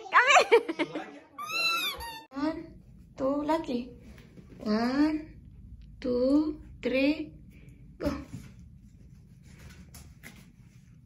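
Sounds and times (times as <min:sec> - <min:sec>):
low room hum: 0:00.1 - 0:11.0.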